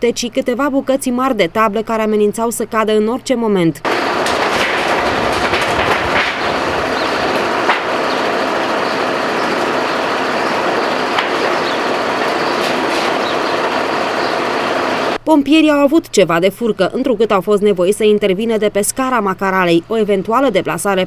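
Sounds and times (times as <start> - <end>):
fire truck engine running: 3.9 - 15.2.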